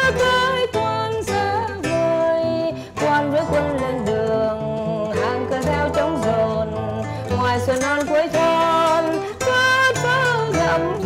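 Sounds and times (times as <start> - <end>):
classical guitar playing: 0.0 - 11.0.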